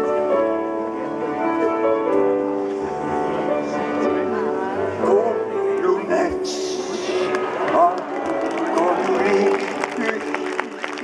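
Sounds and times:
man speaking over public address: 5.0s - 11.0s.

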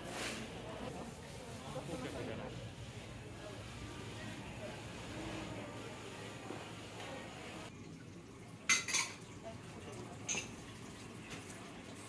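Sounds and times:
tableware clinking: 8.7s - 9.2s, 10.2s - 10.6s.

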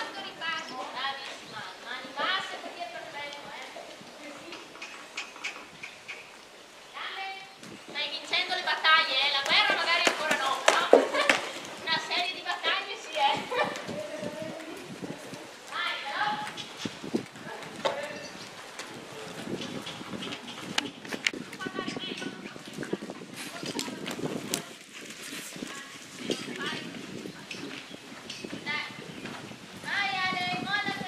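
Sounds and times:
horses walking on sand: 0.0s - 31.0s
people's voices: 6.9s - 24.8s.

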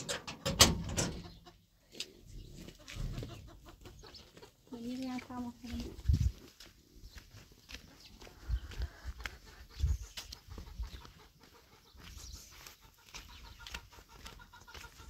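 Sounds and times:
chickens clucking: 0.0s - 15.0s
footsteps on stony dirt: 1.3s - 15.0s.

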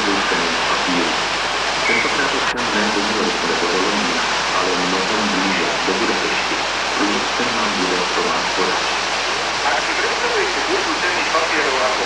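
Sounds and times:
indistinct voices: 0.0s - 9.0s, 9.6s - 12.0s
whitewater rushing: 0.0s - 12.0s.

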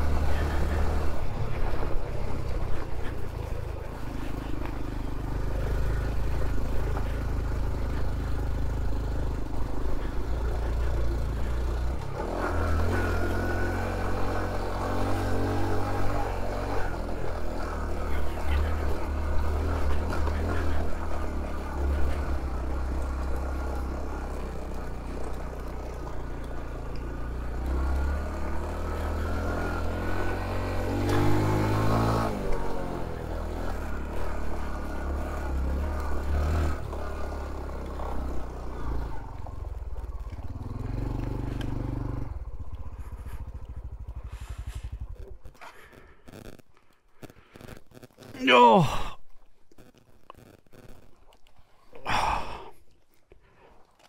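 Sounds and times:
motorcycle engine revving: 0.0s - 52.6s.

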